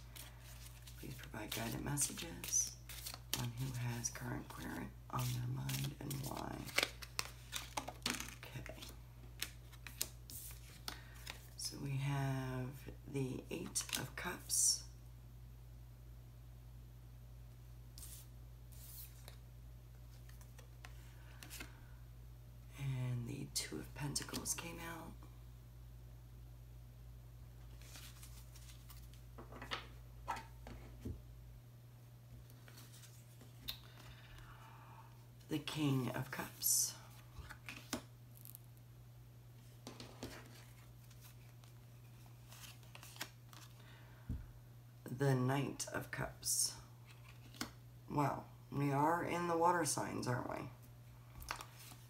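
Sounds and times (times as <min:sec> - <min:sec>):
cards being shuffled: 0:00.0 - 0:11.6, 0:18.0 - 0:19.4, 0:27.7 - 0:30.9, 0:37.1 - 0:38.7, 0:39.8 - 0:43.8, 0:47.1 - 0:47.8, 0:51.4 - 0:52.0.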